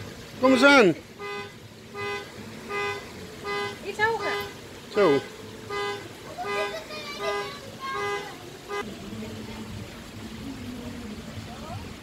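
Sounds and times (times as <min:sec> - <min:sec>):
car horn blasts: 0:01.2 - 0:08.8.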